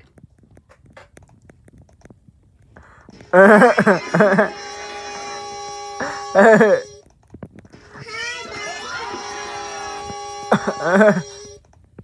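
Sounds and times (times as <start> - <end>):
steady held tones from speakers: 3.0 - 11.6.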